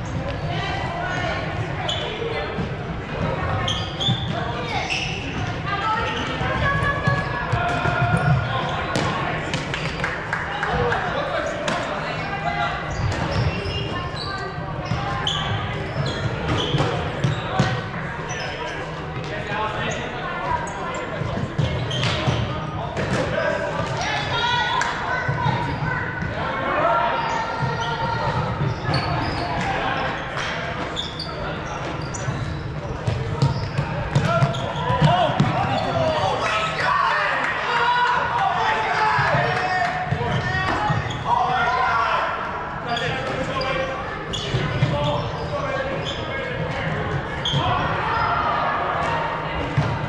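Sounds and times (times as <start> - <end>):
sneakers squeaking: 0.0 - 37.3, 38.1 - 50.0.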